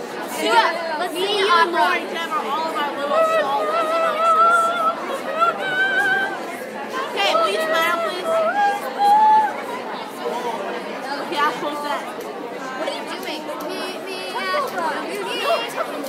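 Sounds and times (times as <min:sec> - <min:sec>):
girls chattering and laughing: 0:00.0 - 0:16.0.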